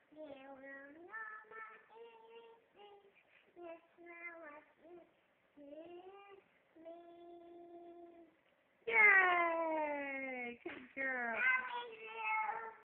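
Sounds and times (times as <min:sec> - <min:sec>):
toddler singing: 0:00.0 - 0:08.3, 0:11.4 - 0:12.9.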